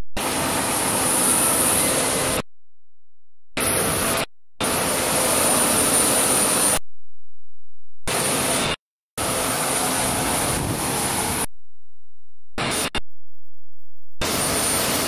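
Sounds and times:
jet engine rush with high whine: 0.2s - 2.5s, 3.5s - 6.8s, 8.1s - 11.5s, 12.6s - 13.0s, 14.2s - 15.0s.

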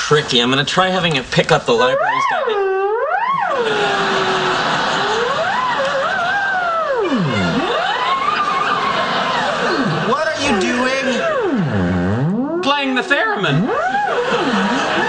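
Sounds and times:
theremin gliding tone: 1.7s - 15.0s.

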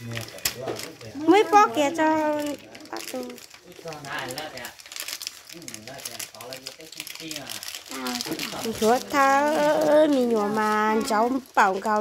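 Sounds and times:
plastic snack packet crinkling: 0.0s - 12.0s
people talking: 5.6s - 12.0s.

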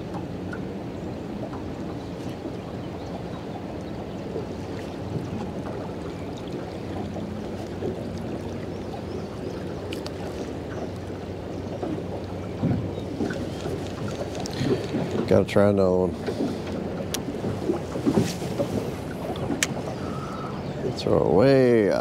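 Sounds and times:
water lapping against boat hull: 0.0s - 22.0s
wind buffeting microphone: 0.0s - 22.0s.

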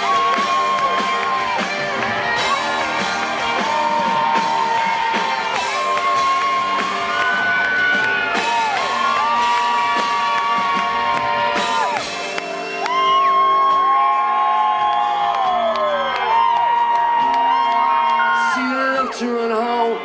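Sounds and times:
crowd whooping: 0.0s - 20.0s
live rock band playing: 0.0s - 20.0s.

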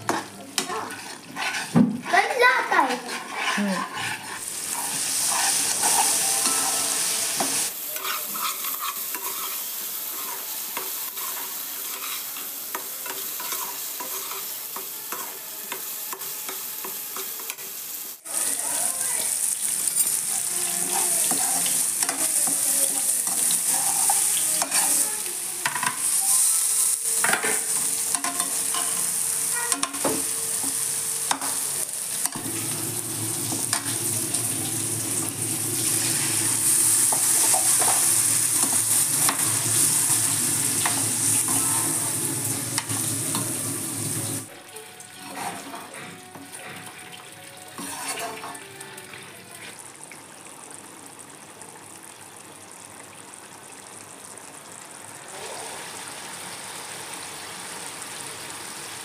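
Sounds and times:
metal spatula scraping pan: 0.0s - 17.7s, 19.8s - 30.1s, 35.9s - 42.1s, 45.1s - 47.0s, 47.7s - 48.7s
sauce sizzling and spluttering in pan: 0.6s - 45.6s.

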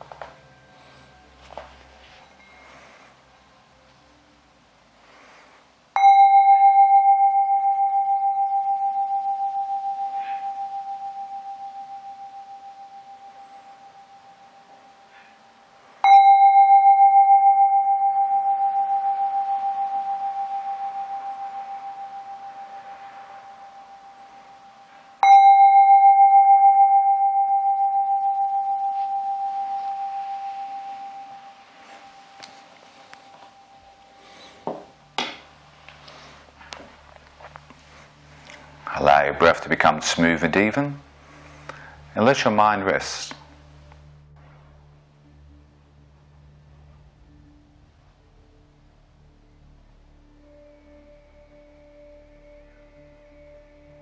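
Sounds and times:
singing bowl ringing: 0.0s - 3.6s, 6.0s - 36.7s, 49.3s - 54.0s.

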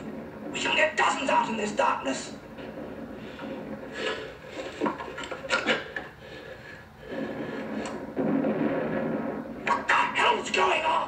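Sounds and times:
rustling: 0.0s - 9.9s.

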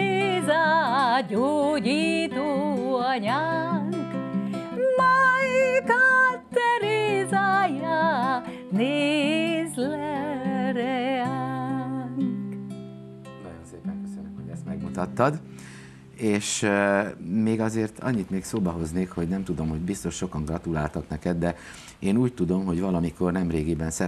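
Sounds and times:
woman singing with vibrato: 0.0s - 12.5s
classical guitar: 0.0s - 21.2s.

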